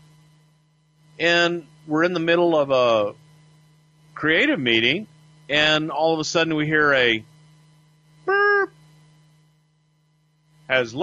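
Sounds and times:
man saying boop: 8.3 - 8.7.

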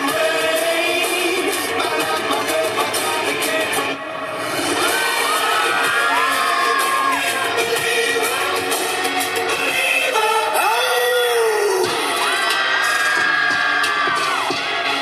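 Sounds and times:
loud dance music: 0.0 - 15.0
crowd cheering and whooping: 4.4 - 7.8, 10.6 - 15.0.

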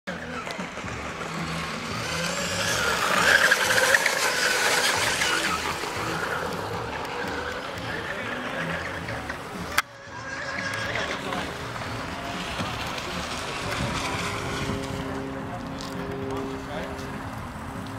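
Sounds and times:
model boat high-pitched whine: 0.1 - 17.7.

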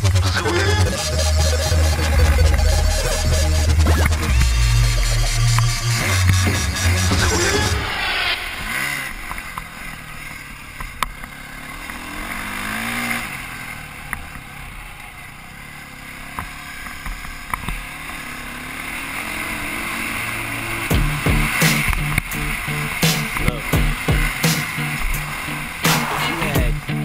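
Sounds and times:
music with heavy beat: 0.0 - 9.0, 20.9 - 27.0
dirt bike engine revving: 0.0 - 27.0.

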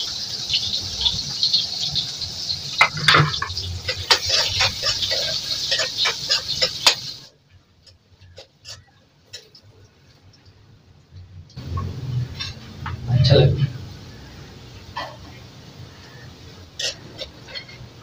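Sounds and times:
food sizzling in oil: 0.0 - 7.3, 11.6 - 18.0
metal spatula scraping a pan: 2.7 - 7.3, 8.2 - 9.5, 11.6 - 13.8, 16.1 - 18.0.

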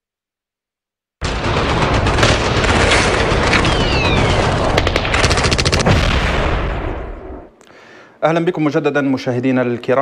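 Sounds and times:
rapid gunshots: 1.2 - 7.4
explosions rumbling: 1.2 - 7.5
falling whistle: 3.6 - 4.5.

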